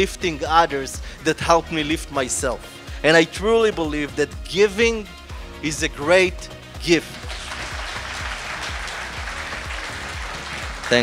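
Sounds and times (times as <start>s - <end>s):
background music with low beat: 0.0s - 11.0s
audience applauding: 7.0s - 11.0s.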